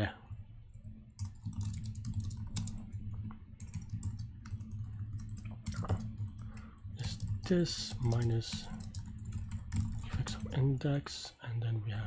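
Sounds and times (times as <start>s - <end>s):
steady low hum: 0.0s - 12.0s
typing on computer keyboard: 0.7s - 10.6s.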